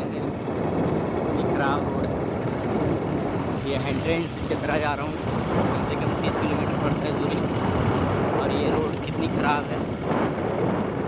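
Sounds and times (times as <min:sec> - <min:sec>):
wind and road noise from vehicle: 0:00.0 - 0:11.0.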